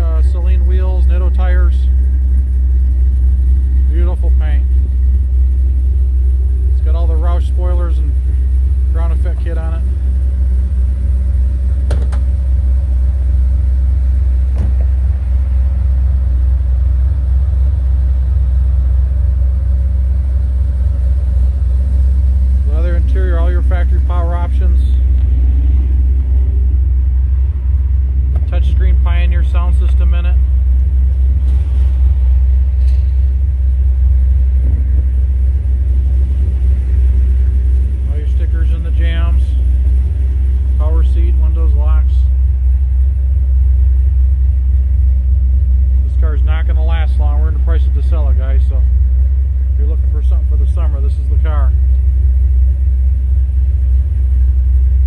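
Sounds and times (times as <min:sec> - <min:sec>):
car engine idling: 0:00.0 - 0:55.0.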